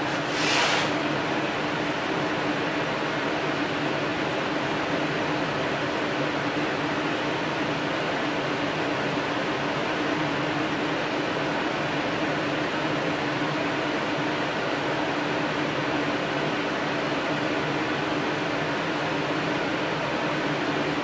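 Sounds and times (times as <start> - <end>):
room noise hum and hiss: 0.0 - 21.0.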